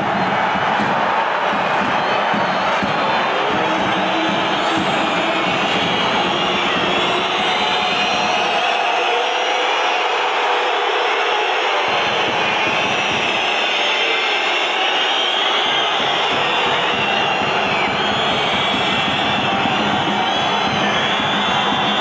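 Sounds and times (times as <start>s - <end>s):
football crowd roaring: 0.0s - 22.0s.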